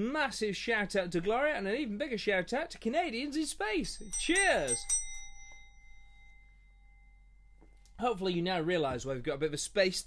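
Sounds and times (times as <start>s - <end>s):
faint high ringing tone: 3.8s - 8.4s.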